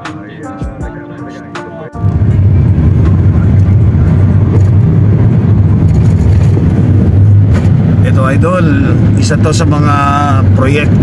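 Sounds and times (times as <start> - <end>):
background music: 0.0 - 5.2
car driving rumble inside cabin: 2.0 - 11.0.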